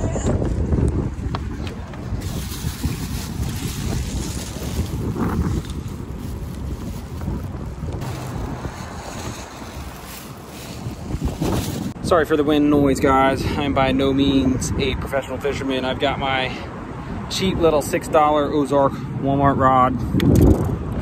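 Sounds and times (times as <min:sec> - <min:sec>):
wind buffeting microphone: 0:00.0 - 0:18.6, 0:19.2 - 0:21.0.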